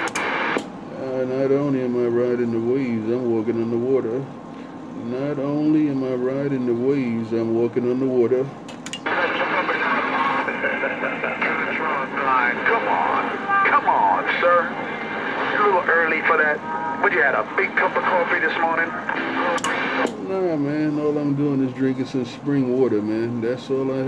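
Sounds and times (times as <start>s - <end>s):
radio click: 0.0s - 0.7s, 19.1s - 20.2s
garbled radio transmission with static: 0.0s - 4.0s, 9.0s - 22.2s.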